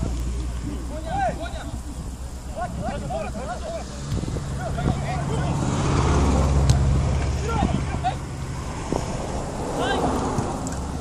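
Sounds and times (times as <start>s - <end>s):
low engine hum: 0.0s - 11.0s
players shouting: 6.5s - 8.4s, 9.5s - 10.6s.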